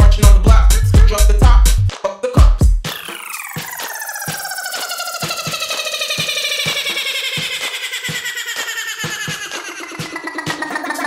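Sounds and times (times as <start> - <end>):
electronic hip-hop instrumental: 0.0 - 11.0.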